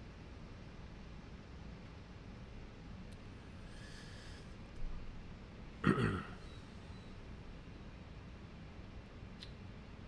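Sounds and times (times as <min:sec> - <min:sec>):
man breathing close to microphone: 0:03.6 - 0:04.6
small click: 0:09.4 - 0:09.6.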